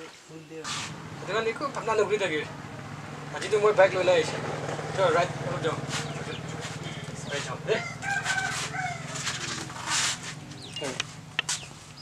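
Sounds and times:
rooster crowing: 7.6s - 10.1s.

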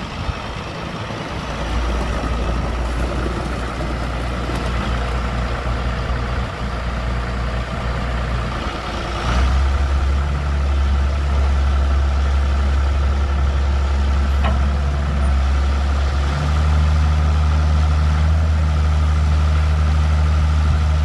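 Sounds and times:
tractor diesel engine running: 0.0s - 21.0s.

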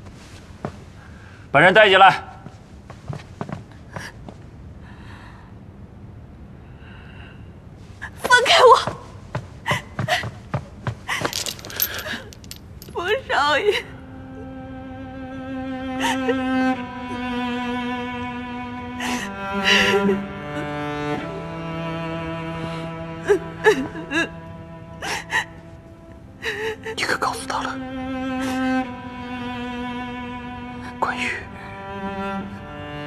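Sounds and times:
chains clinking and rattling: 11.1s - 13.1s
bowed-string music: 12.8s - 33.0s.

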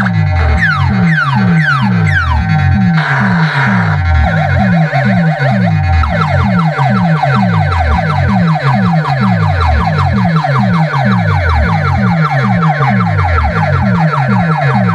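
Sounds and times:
siren-like electronic music: 0.0s - 14.9s.

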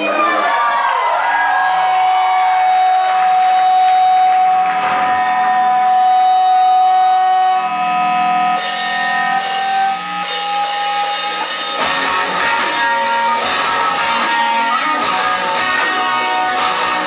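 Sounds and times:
rock band with drums and cymbals: 2.1s - 17.0s
held electric guitar notes: 2.7s - 17.0s.

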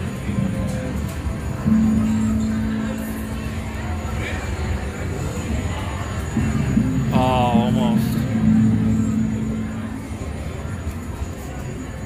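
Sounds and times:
steady low tone: 0.0s - 12.0s.

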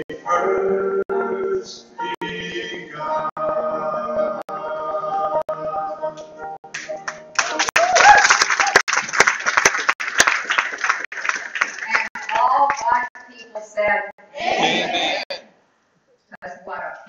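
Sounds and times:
music: 0.0s - 8.0s
congregation clapping: 6.7s - 13.2s
voices: 11.8s - 15.5s.

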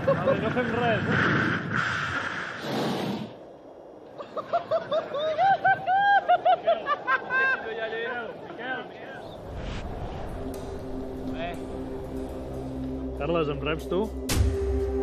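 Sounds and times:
wind noise: 0.0s - 5.9s, 9.2s - 12.7s
person laughing: 4.2s - 7.6s.

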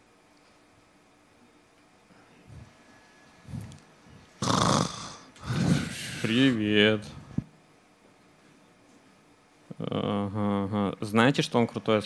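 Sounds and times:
breaths into a microphone: 5.0s - 6.4s.

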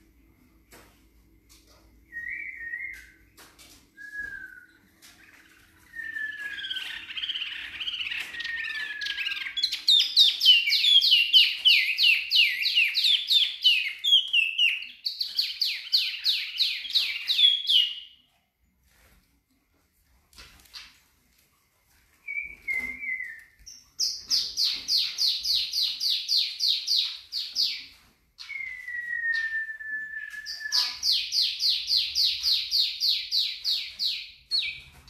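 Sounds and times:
songbird singing: 4.0s - 18.1s.

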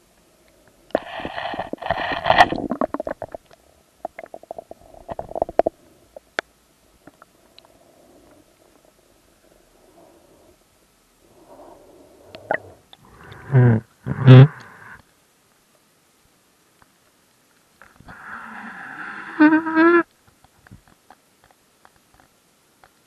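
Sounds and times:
underwater gurgling and surging: 0.9s - 6.4s.

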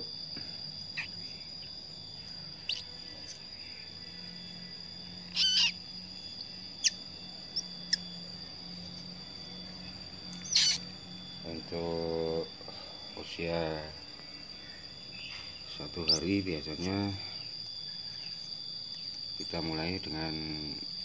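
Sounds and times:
high insect whine: 0.0s - 21.0s
wavering bird call: 0.9s - 11.1s
bird squeaks and chirps: 5.2s - 5.8s, 6.8s - 8.1s, 10.4s - 10.9s.

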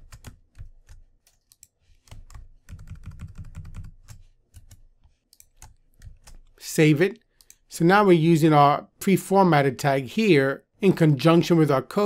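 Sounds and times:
computer keyboard typing: 0.0s - 6.6s.

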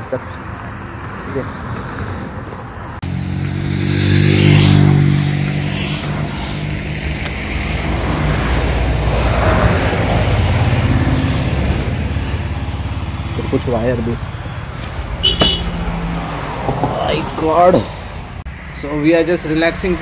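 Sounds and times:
vehicles passing by: 0.0s - 20.0s
engine drone: 2.6s - 16.7s.

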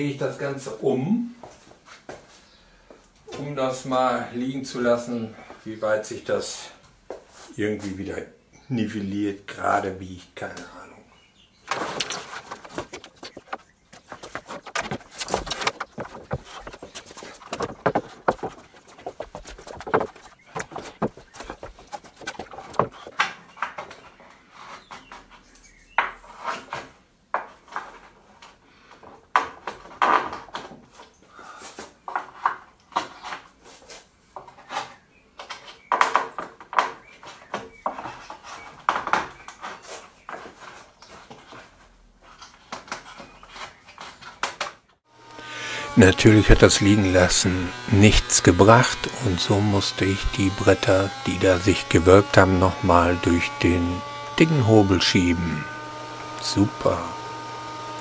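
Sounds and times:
wooden boards knocking and clattering: 11.6s - 25.4s, 29.0s - 31.1s, 34.4s - 41.7s.

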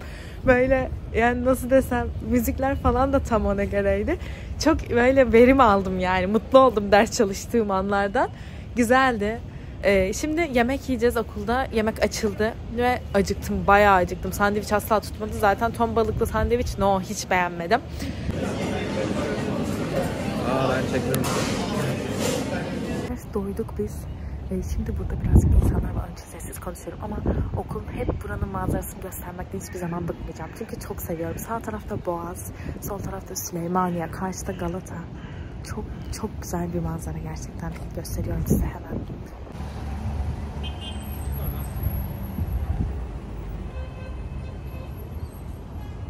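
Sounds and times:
low city rumble: 0.0s - 46.0s
many people talking: 0.7s - 35.1s.

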